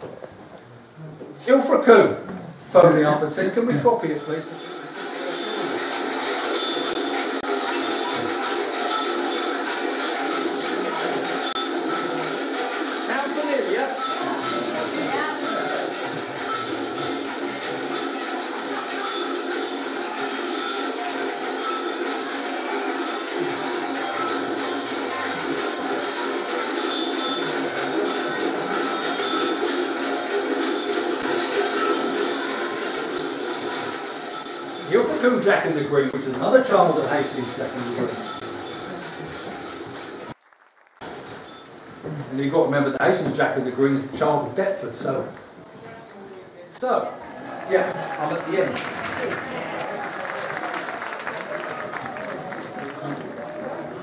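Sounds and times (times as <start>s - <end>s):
procession music over speakers: 0.0s - 40.4s, 41.0s - 54.0s.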